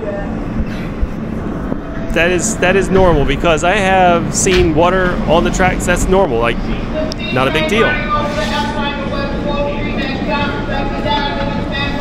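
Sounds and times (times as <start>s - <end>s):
passengers chatting: 0.0s - 12.0s
train humming: 0.0s - 12.0s.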